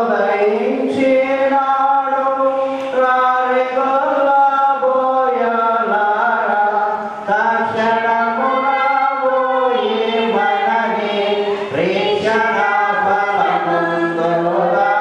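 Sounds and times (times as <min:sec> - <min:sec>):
person chanting through a microphone: 0:00.0 - 0:15.0.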